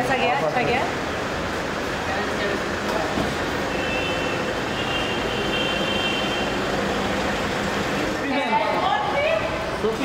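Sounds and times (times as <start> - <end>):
vehicles in car park: 0.0 - 10.0.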